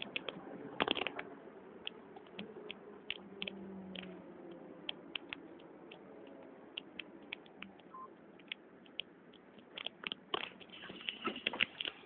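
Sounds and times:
faint steady bus hum: 0.0s - 12.0s.

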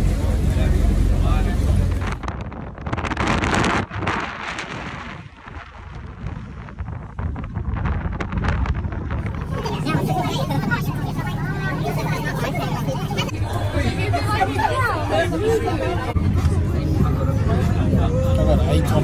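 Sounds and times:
low engine drone: 0.0s - 19.0s
wind rushing on microphone: 0.1s - 11.7s
passengers chattering: 9.2s - 19.0s.

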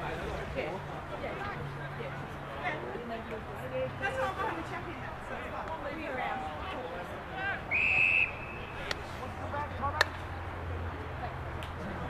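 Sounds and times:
players calling: 4.3s - 10.4s
referee whistle blast: 7.7s - 8.8s.

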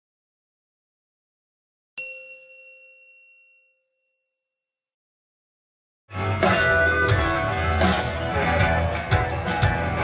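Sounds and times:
bright bell-like chime: 2.0s - 4.9s.

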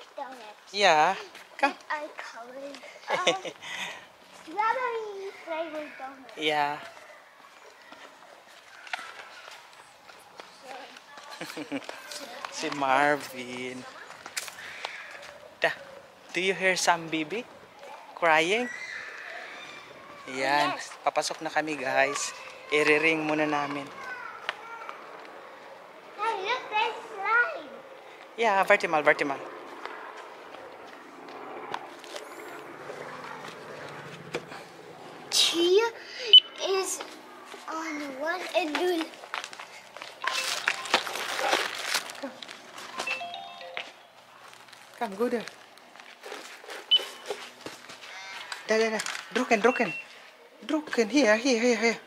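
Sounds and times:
footsteps on stone paving: 5.7s - 15.4s, 36.8s - 49.4s.

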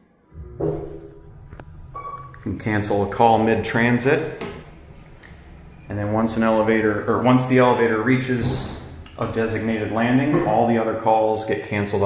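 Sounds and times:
steady beep-like tone: 0.0s - 11.1s
elevator hum: 0.3s - 11.3s.

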